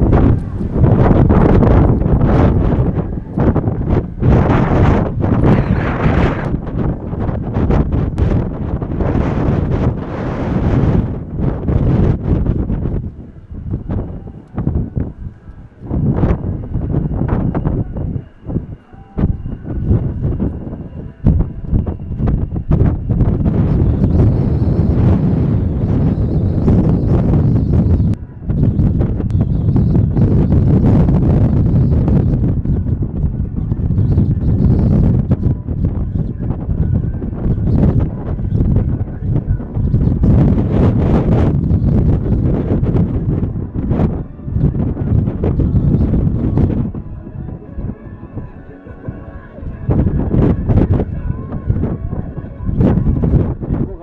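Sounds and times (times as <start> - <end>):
jet engine high whine: 0.0 - 54.0
wind buffeting microphone: 0.0 - 54.0.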